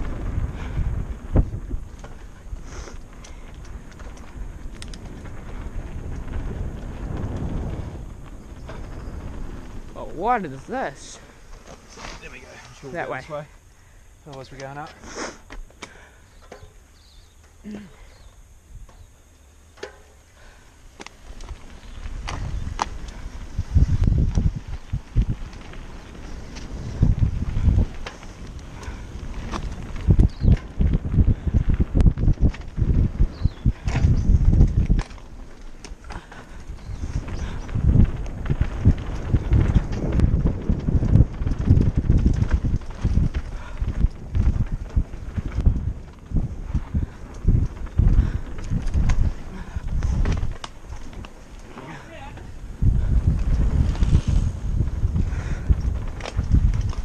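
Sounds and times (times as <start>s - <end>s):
bike rattling and knocking: 0.0s - 13.2s, 19.7s - 57.0s
wind buffeting microphone: 0.0s - 14.9s, 20.4s - 57.0s
tyres on dirt: 0.0s - 57.0s.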